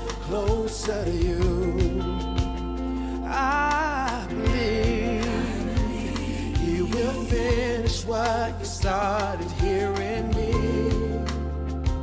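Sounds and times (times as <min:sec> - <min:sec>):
backing music with drum beat: 0:00.0 - 0:12.0
gospel-style singing: 0:00.0 - 0:12.0.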